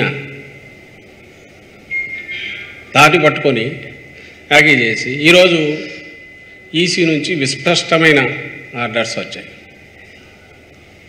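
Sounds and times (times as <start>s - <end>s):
low room noise: 0.0s - 11.0s
steady high beep tone: 0.0s - 11.0s.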